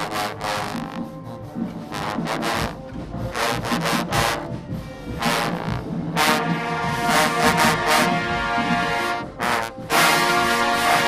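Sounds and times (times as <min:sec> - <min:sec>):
trombones blasting brassy notes: 0:00.0 - 0:11.0.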